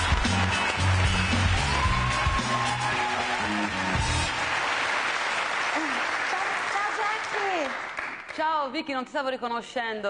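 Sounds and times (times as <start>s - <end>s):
studio audience applauding: 0.0s - 8.5s.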